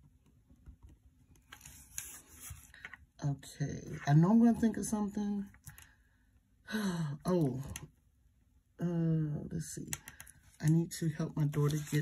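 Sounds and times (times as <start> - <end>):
paper rustling: 1.4 - 3.0, 10.2 - 12.0.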